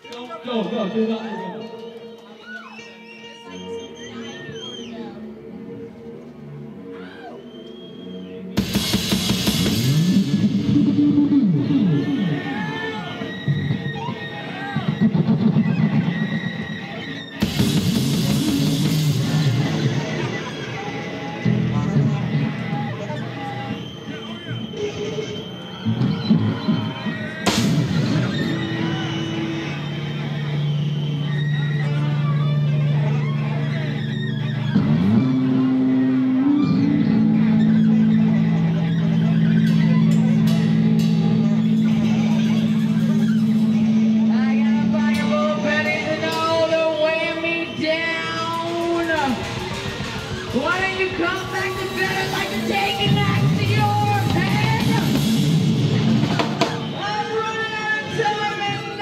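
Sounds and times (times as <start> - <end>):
low rumbling band drone: 8.5 - 14.1, 27.4 - 57.0.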